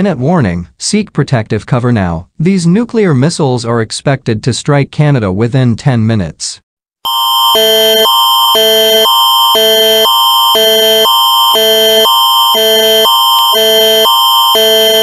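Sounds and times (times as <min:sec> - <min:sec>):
electronic alert tone: 0:07.1 - 0:15.0.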